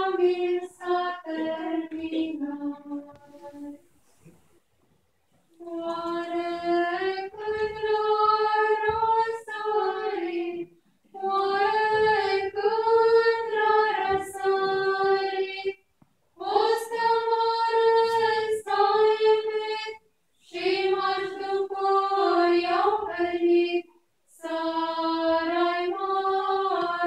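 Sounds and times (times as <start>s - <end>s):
women's choir chanting a cappella: 0.0s - 3.8s, 5.6s - 15.8s, 16.4s - 27.0s.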